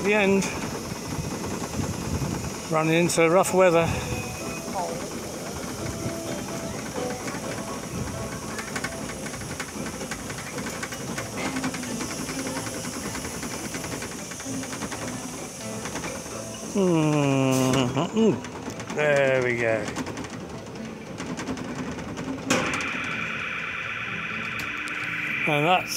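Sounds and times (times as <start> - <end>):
ride hissing and running noise: 0.0 - 25.9.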